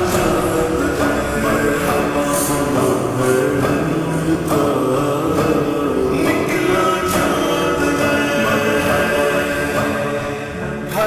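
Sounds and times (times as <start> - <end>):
man singing with reverb: 0.0 - 11.0
sustained vocal drone: 0.0 - 11.0.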